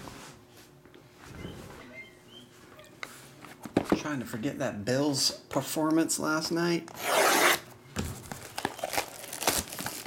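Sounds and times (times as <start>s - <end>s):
shrink wrap rustling: 8.0s - 10.0s.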